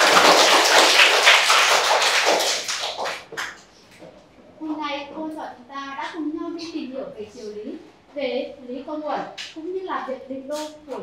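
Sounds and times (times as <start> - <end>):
children clapping: 0.0 - 3.7.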